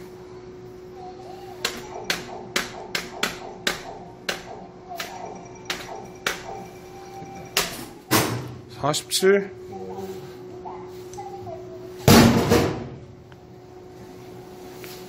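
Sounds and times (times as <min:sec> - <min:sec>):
prize machine ticks: 0:01.6 - 0:07.9
electronic hum and tune: 0:01.6 - 0:08.2.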